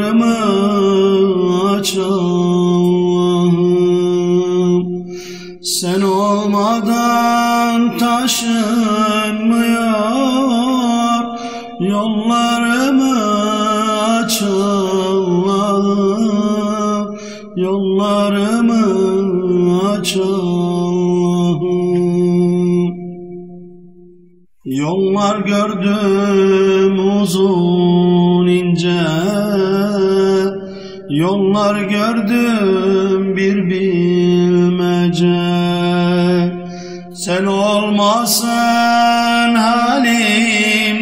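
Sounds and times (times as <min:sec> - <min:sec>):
man singing a hymn: 0:00.0 - 0:23.1, 0:24.6 - 0:41.0
men singing unaccompanied: 0:37.2 - 0:41.0.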